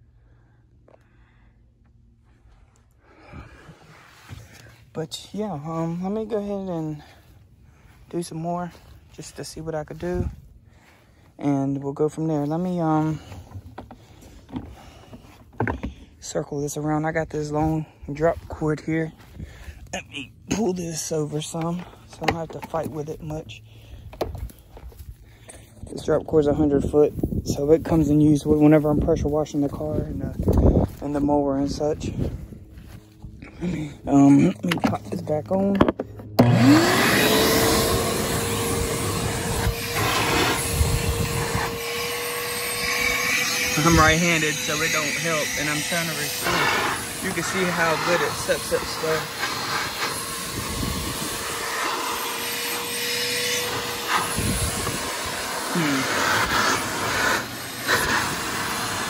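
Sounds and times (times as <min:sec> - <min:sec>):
wind rumble on microphone: 0:25.8 - 0:33.5, 0:40.5 - 0:41.8, 0:50.5 - 0:51.4, 0:54.2 - 0:55.2
shop vac motor whining: 0:31.7 - 0:59.0
rushing air: 0:36.6 - 0:59.0.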